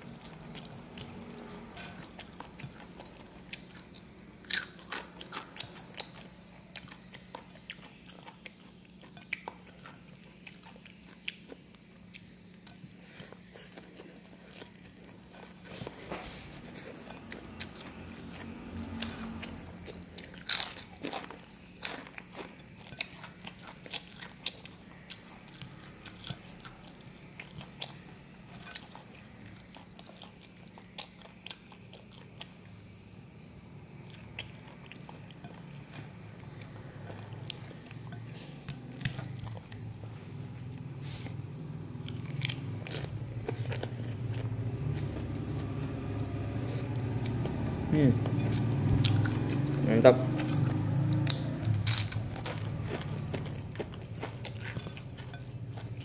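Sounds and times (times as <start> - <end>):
person chewing crunchy crackers: 0.0 - 56.0
steady low hum: 0.0 - 56.0.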